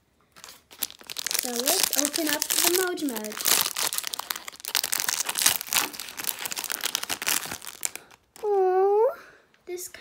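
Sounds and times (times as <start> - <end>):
plastic bag crinkling: 0.4 - 8.6.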